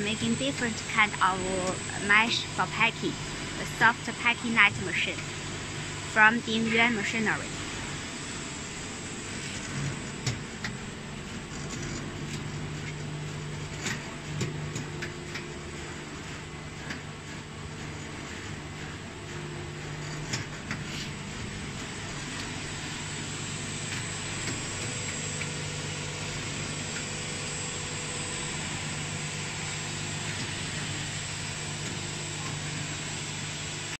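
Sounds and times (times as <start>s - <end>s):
extrusion machine motor hum: 0.0s - 14.2s, 14.8s - 34.0s.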